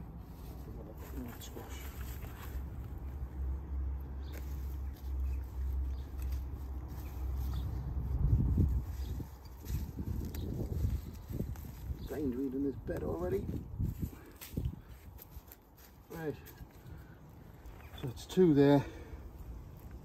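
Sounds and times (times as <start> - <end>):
gloved hands firming soil: 4.2 - 20.0.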